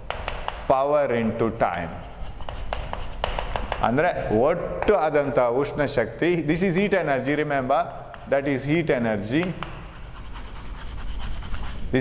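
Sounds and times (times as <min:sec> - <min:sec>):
chalk scratching on chalkboard: 0:00.1 - 0:04.0, 0:07.4 - 0:12.0.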